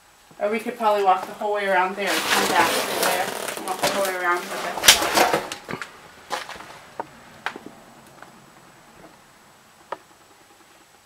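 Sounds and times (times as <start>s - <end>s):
person speaking: 0.4s - 6.7s.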